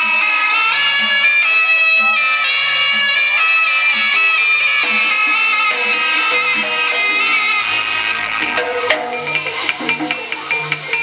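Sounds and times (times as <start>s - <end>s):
gamelan accompaniment: 0.0s - 11.0s
reedy shawm melody: 0.0s - 11.0s.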